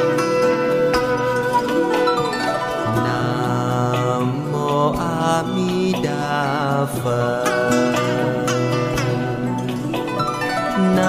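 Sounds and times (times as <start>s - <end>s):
plucked string accompaniment: 0.0s - 11.0s
person chanting: 2.8s - 9.5s, 10.8s - 11.0s.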